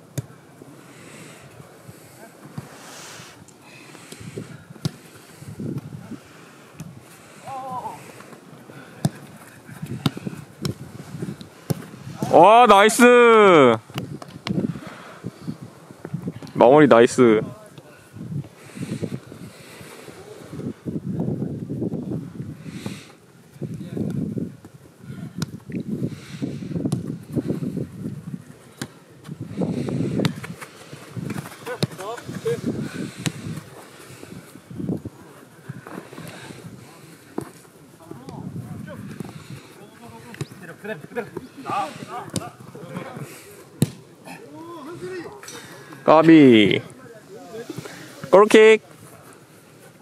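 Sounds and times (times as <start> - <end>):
football being kicked: 9.0 - 10.8, 11.6 - 12.3, 31.2 - 32.1, 43.8 - 44.0
players shouting: 12.1 - 13.8.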